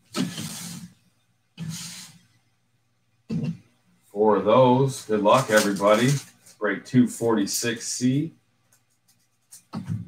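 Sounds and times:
cellophane packs rustling: 4.8s - 6.6s.

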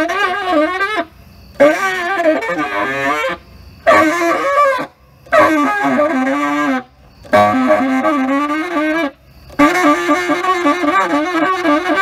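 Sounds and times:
tenor saxophone improvising: 0.0s - 12.0s.

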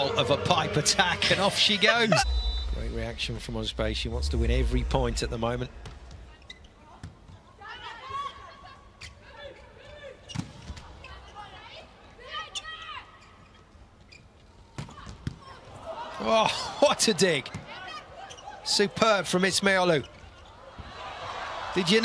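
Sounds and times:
voices in arena: 0.0s - 13.7s, 14.5s - 22.0s.

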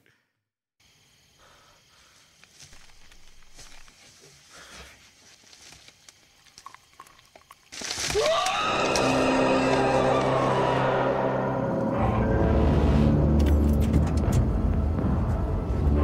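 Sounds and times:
scary music: 8.3s - 16.0s.

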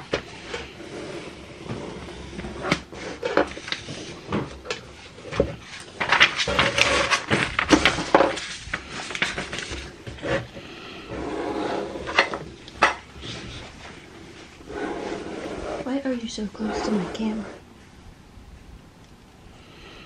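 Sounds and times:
scraping and clatter: 0.0s - 15.9s.

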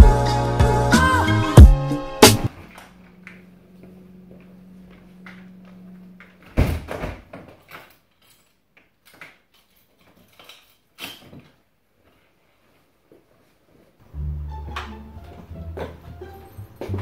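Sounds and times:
low steady hum: 2.4s - 8.5s.

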